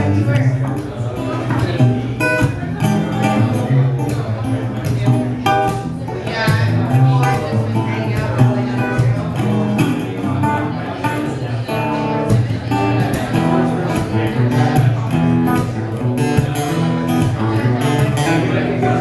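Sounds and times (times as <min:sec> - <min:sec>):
fingerstyle acoustic guitar: 0:00.0 - 0:19.0.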